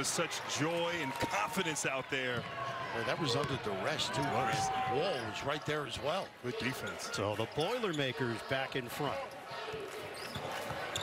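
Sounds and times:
arena crowd murmur: 0.0 - 11.0.

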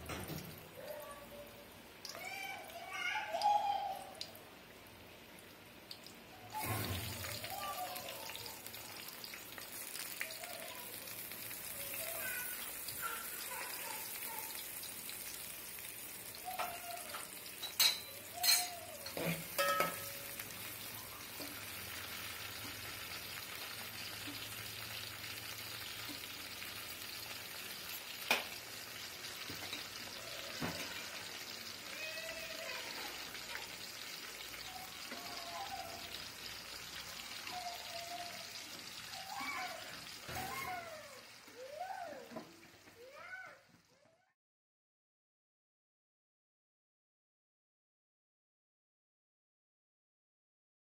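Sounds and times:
vegetables sizzling in hot oil: 1.8 - 43.7.

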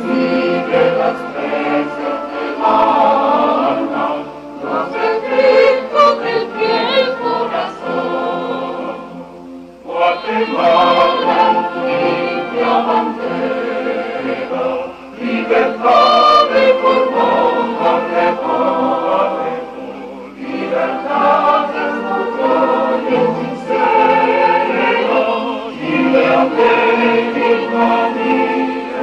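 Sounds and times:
mixed choir singing a hymn: 0.0 - 29.0
wind band playing: 0.0 - 29.0.

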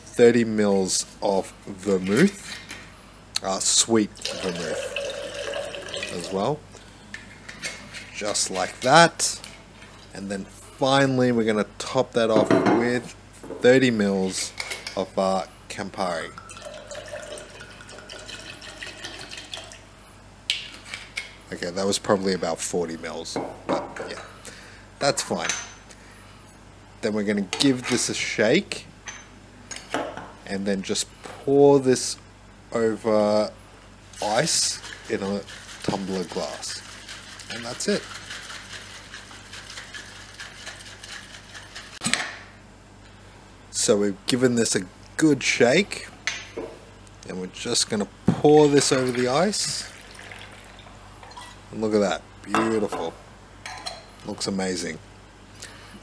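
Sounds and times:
liquid pouring into cocktail shaker: 4.2 - 6.4, 16.4 - 19.8, 48.6 - 51.5
cocktail shaker rattling: 34.5 - 42.0.

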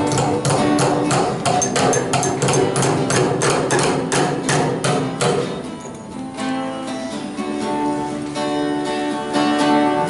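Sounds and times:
hammers driving nails into wood: 0.0 - 5.7
acoustic guitar music: 0.0 - 10.0.

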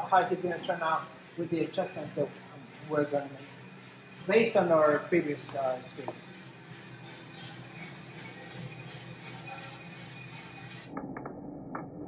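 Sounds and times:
coffee roaster humming: 0.0 - 10.9.

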